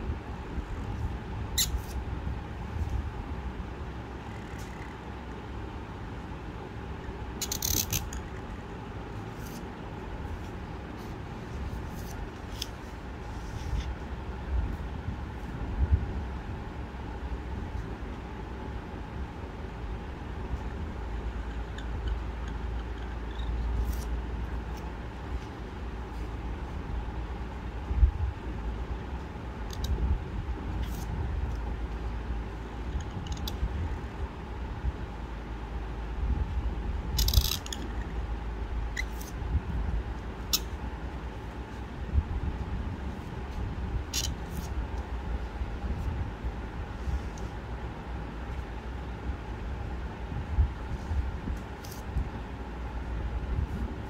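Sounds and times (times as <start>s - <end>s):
low background rumble: 0.0s - 54.0s.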